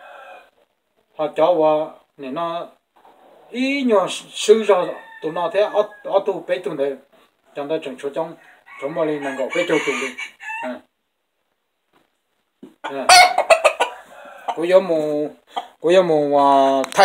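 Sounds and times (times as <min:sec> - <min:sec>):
rooster crowing: 0:00.0 - 0:00.5, 0:04.8 - 0:06.2, 0:08.4 - 0:10.8.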